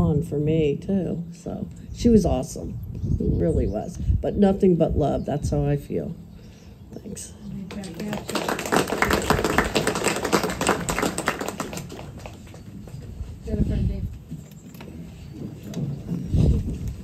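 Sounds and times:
crowd applauding: 7.8s - 12.7s.

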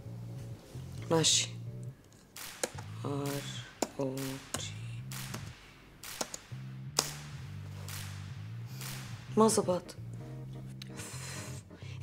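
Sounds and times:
soft background music: 0.0s - 5.5s, 6.4s - 12.0s
keystrokes on computer keyboard: 6.2s - 6.4s.

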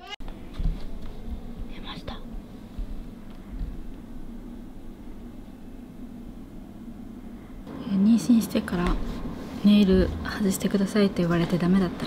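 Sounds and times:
steady low hum: 0.2s - 12.0s
soft whisper: 1.7s - 2.4s.

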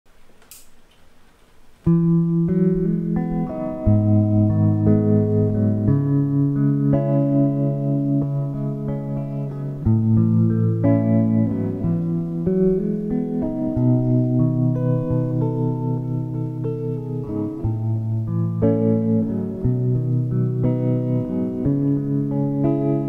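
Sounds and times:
clean electric guitar chords: 1.8s - 23.0s.

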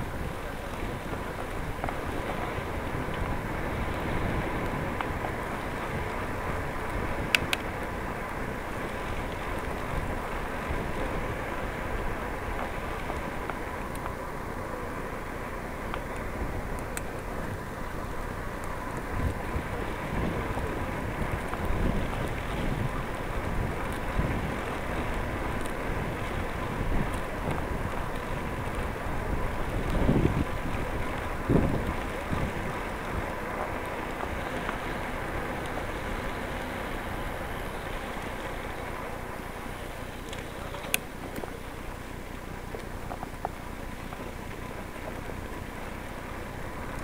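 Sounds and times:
wind buffeting microphone: 0.0s - 43.6s.

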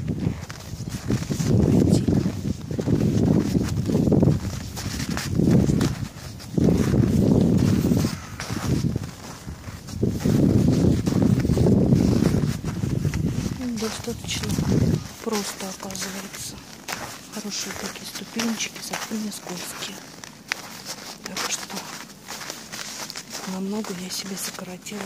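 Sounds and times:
low rumbling on microphone: 0.0s - 15.4s
footsteps crunching in snow: 0.0s - 25.0s.

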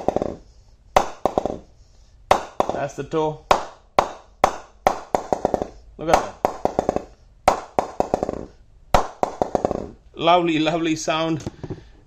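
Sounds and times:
mallet knocking cricket bat: 0.0s - 0.4s, 1.0s - 1.7s, 2.3s - 10.0s.

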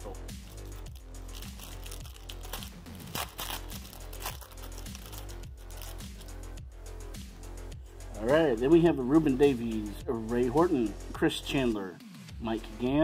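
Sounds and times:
background music with low beat: 0.0s - 13.0s
paper crinkling: 0.5s - 6.3s
wrapper tearing: 0.5s - 6.4s.

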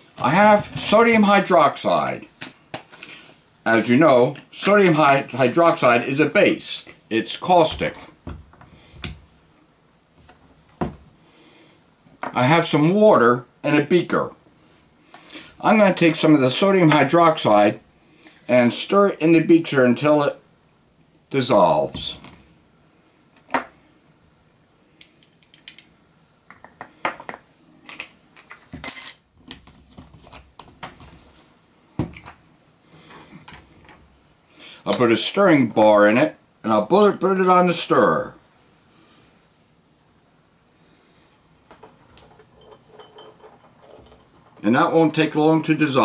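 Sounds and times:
glass beaker clinking: 42.4s - 44.4s.

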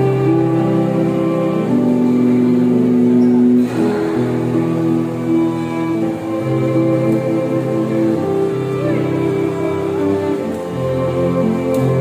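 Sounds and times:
piano quartet playing slow piece: 0.0s - 12.0s.

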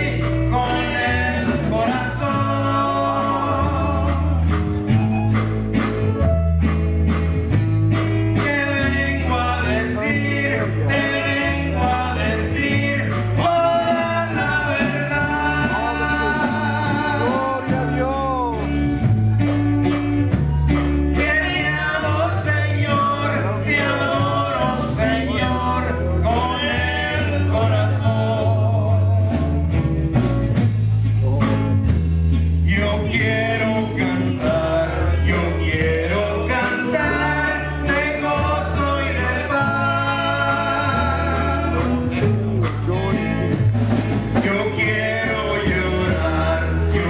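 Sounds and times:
men singing into microphones: 0.0s - 5.0s, 8.3s - 19.1s, 20.5s - 29.7s, 32.4s - 47.0s
drum kit: 0.0s - 47.0s
electric guitars: 0.0s - 47.0s
steady bass line: 0.0s - 47.0s.

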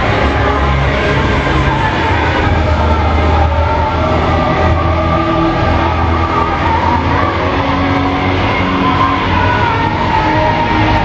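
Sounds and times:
heavy metal music with droning chords: 0.0s - 11.0s.

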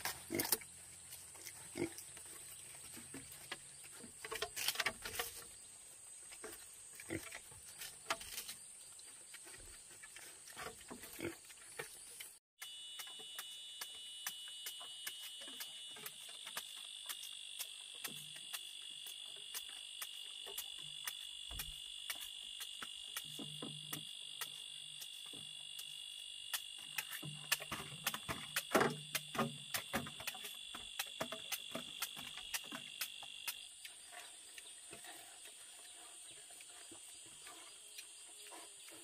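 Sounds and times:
insects chirping: 0.0s - 39.0s.

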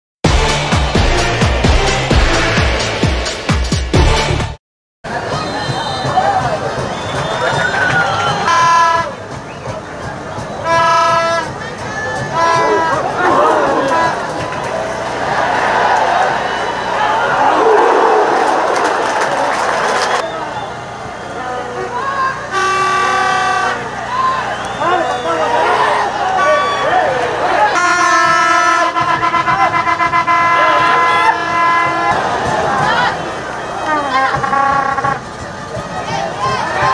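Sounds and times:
horn toot: 0.3s - 4.6s, 8.1s - 9.2s, 10.6s - 11.6s, 12.3s - 14.4s, 22.4s - 35.4s
football crowd noise: 0.3s - 36.9s
faint voices: 28.9s - 36.9s.

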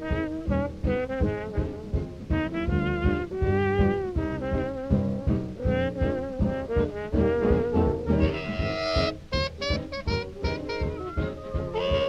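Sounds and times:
swing dance band with brass: 0.0s - 12.0s.

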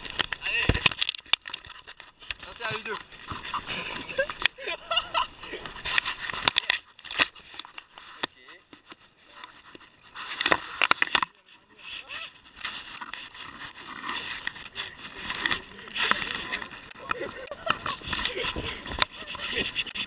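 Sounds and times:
microphone handling noise: 5.5s - 20.0s.

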